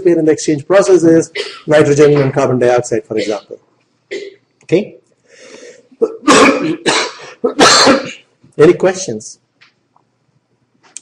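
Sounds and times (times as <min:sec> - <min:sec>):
man coughing: 0:01.4 - 0:01.7, 0:03.2 - 0:04.4, 0:06.0 - 0:08.3.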